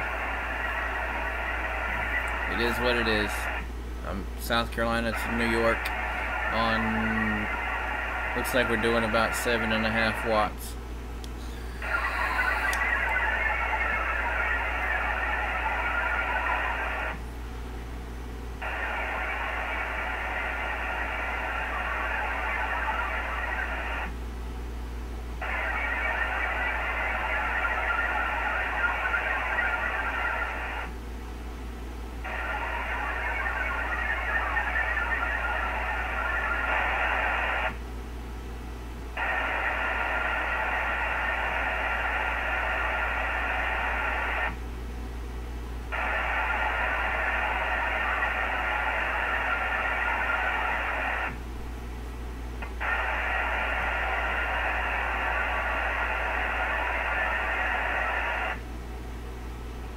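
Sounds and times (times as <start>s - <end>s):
steady low hum: 0.0s - 59.9s
person speaking over radio: 2.2s - 7.6s, 8.3s - 10.8s, 11.5s - 16.8s, 32.3s - 36.6s.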